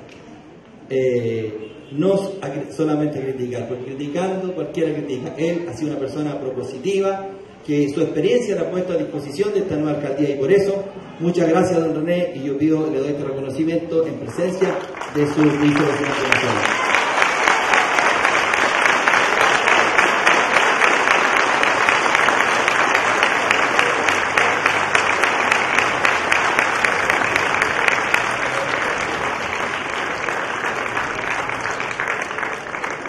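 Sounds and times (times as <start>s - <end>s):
crowd applauding: 14.1s - 33.0s.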